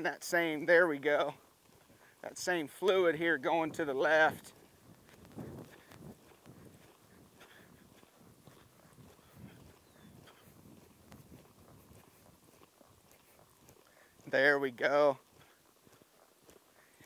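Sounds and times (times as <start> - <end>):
horse hoofbeats on soft dirt: 0.0 - 17.0.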